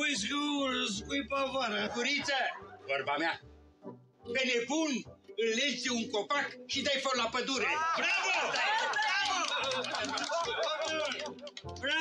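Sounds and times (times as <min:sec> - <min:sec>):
people clapping: 0:07.9 - 0:12.0.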